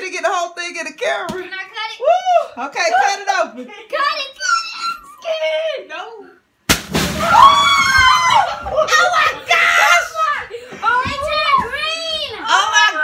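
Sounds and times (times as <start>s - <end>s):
water balloon bursting: 6.7s - 8.5s
children screaming and shouting: 7.2s - 13.0s.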